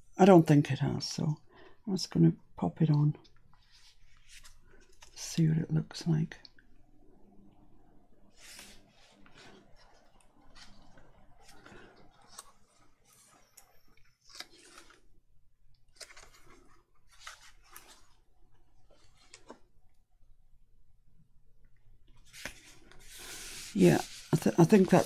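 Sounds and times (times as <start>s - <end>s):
paper rustling and rubbing: 8.3s - 13.6s, 22.2s - 25.0s.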